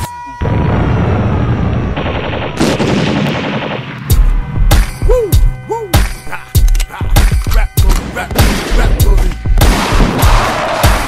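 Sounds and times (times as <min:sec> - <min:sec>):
machine-gun fire: 0:02.0 - 0:04.1
hip-hop beat with heavy kick drums: 0:04.1 - 0:11.0.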